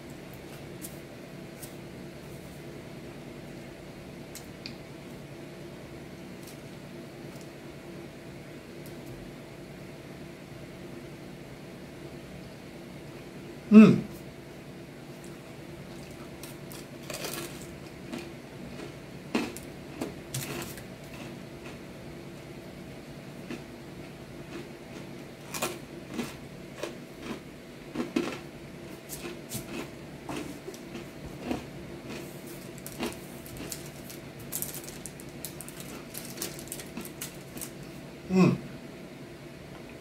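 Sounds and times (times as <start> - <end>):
steady low hum: 0.0 - 40.0
person chewing pizza crunchily: 15.1 - 38.7.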